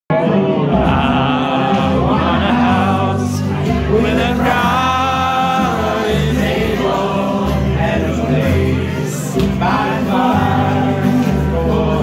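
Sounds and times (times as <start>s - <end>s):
voices singing together: 0.1s - 12.0s
low bass notes: 0.6s - 12.0s.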